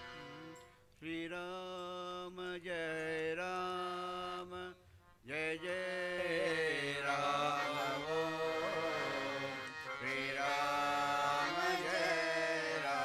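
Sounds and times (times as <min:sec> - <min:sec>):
men chanting: 0:05.4 - 0:13.0.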